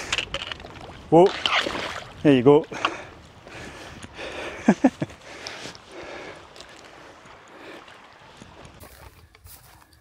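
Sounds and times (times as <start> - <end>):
stony river flowing: 0.0 - 8.8
footsteps splashing through water: 0.5 - 2.2.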